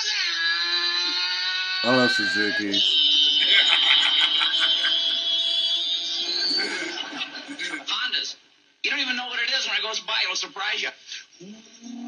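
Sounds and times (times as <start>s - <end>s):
voices: 1.8s - 8.0s.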